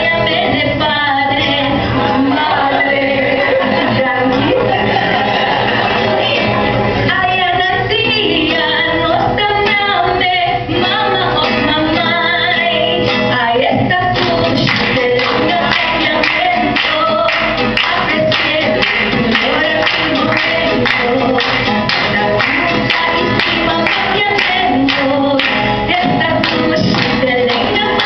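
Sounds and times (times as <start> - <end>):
acoustic guitar: 0.0 - 28.0
woman singing into microphone: 0.0 - 28.0.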